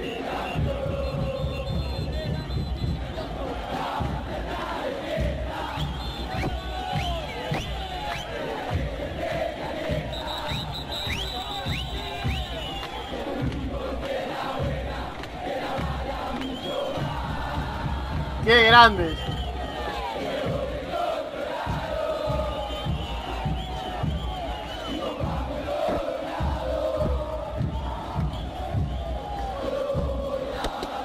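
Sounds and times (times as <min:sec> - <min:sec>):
football crowd singing and chanting: 0:00.0 - 0:31.0.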